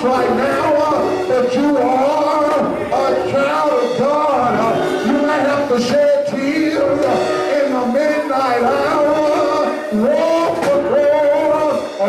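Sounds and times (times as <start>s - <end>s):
man singing into microphone: 0.0s - 12.0s.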